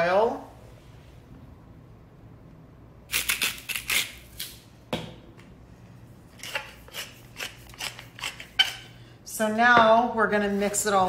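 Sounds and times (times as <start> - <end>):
pepper mill grinding: 6.3 - 8.9.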